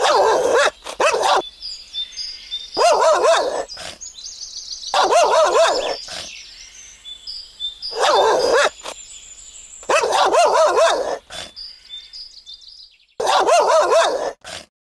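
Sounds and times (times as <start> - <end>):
dog barking and whining: 0.0 - 1.5, 2.8 - 4.0, 4.9 - 6.3, 7.9 - 9.0, 9.8 - 11.5, 13.2 - 14.7.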